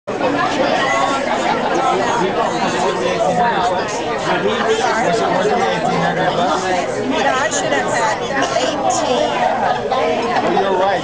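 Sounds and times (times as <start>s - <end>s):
babble of overlapping voices: 0.1s - 11.0s.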